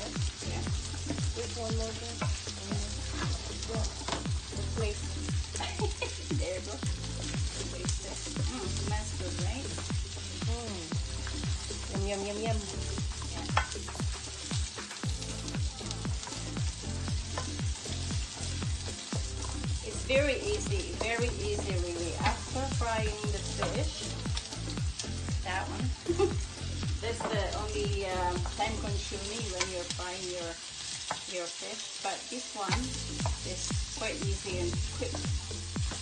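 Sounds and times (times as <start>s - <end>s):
onions sizzling in a frying pan: 0.0s - 36.0s
background music with a beat: 2.2s - 28.6s, 32.7s - 36.0s.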